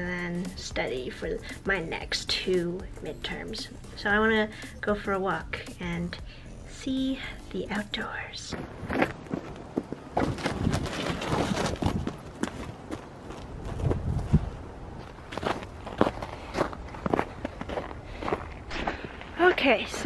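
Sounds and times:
boots walking on snow: 0:08.6 - 0:19.8.

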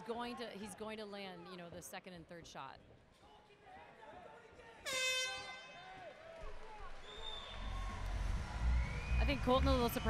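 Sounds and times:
air horn blast: 0:04.8 - 0:05.8.

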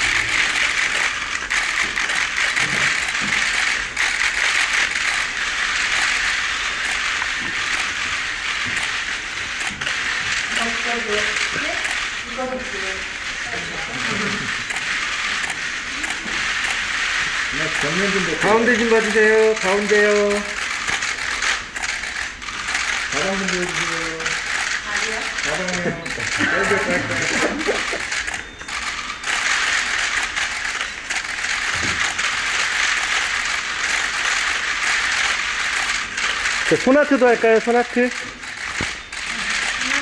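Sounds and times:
camera shutter clicks: 0:00.0 - 0:12.1, 0:14.1 - 0:16.9, 0:17.6 - 0:40.0
murmur of many voices: 0:23.1 - 0:28.3.

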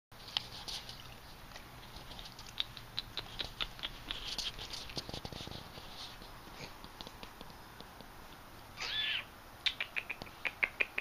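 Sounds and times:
dog sniffing: 0:00.2 - 0:07.6
dog claws ticking on tiles: 0:01.8 - 0:05.0.

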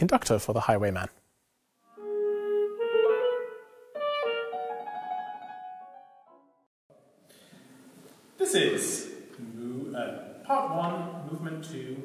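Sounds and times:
clarinet playing held notes: 0:01.8 - 0:06.4.

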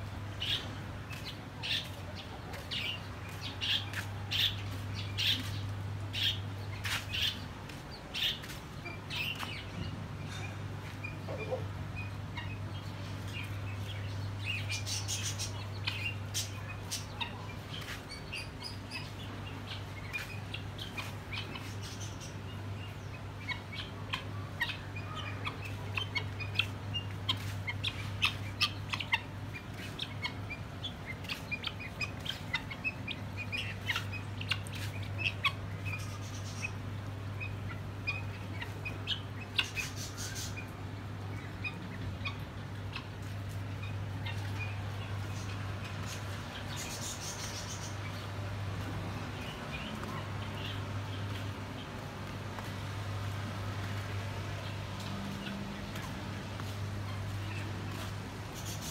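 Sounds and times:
birds chirping: 0:00.0 - 0:58.9.

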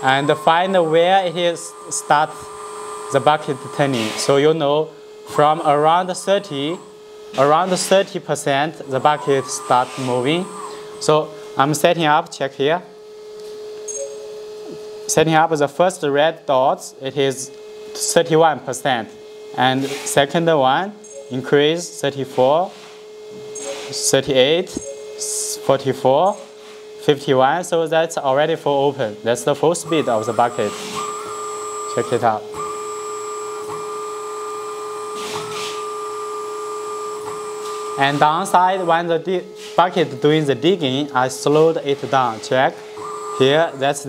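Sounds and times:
hydraulic pump whining: 0:00.0 - 0:12.2, 0:22.3 - 0:44.0
electrical hum: 0:00.0 - 0:44.0.

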